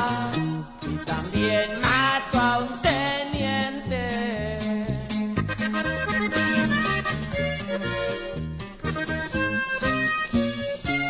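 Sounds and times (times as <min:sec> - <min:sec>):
accordion melody: 0:00.0 - 0:11.0
bass line: 0:00.0 - 0:11.0
guitar: 0:00.0 - 0:11.0.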